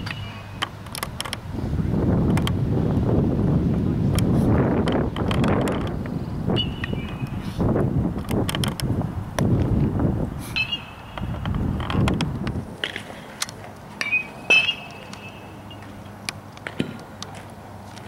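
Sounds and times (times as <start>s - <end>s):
wind rumbling on microphone: 0.0s - 14.0s.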